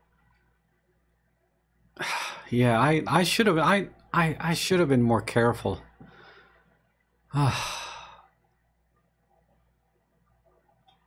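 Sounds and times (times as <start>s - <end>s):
man sighing: 2.0s - 2.5s, 7.3s - 8.3s.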